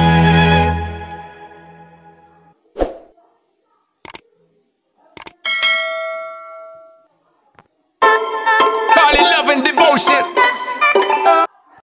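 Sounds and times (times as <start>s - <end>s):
double mouse click: 4.0s - 4.2s, 5.2s - 5.4s
bell ding: 5.5s - 7.0s.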